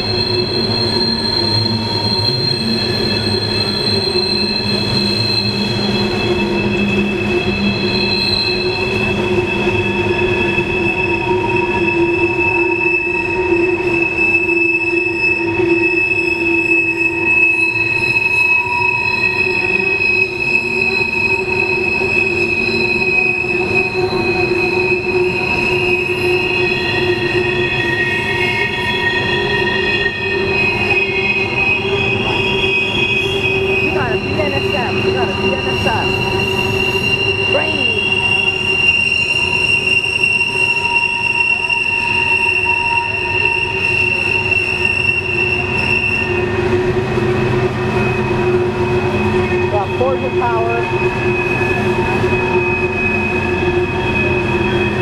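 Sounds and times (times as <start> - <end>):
rumble of rolling train cars: 0.0 - 55.0
train wheel flanges squealing: 0.0 - 55.0.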